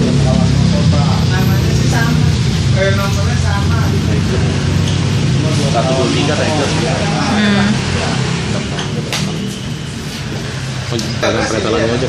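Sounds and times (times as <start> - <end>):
engine rumbling: 0.0 - 12.0
indistinct voices: 0.0 - 12.0.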